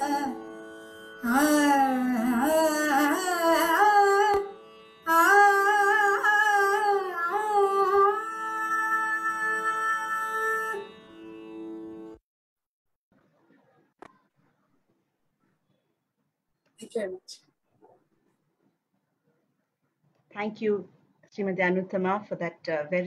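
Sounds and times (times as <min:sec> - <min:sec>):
woman singing: 0:00.0 - 0:00.4, 0:01.2 - 0:10.9.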